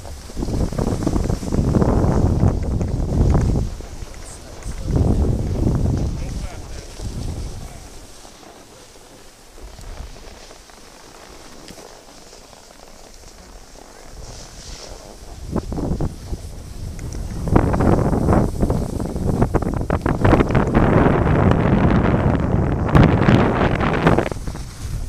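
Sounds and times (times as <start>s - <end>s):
wind buffeting microphone: 0.0s - 11.8s, 13.1s - 25.0s.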